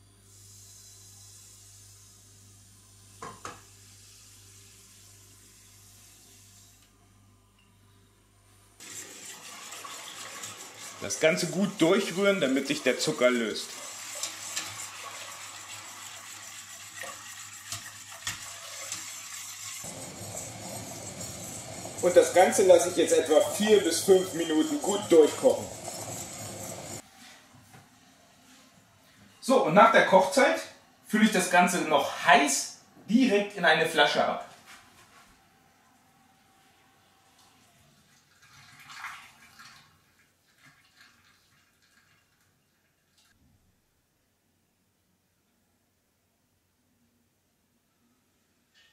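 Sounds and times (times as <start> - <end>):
wire whisk scraping a metal pot: 8.8 - 14.9, 16.2 - 27.0.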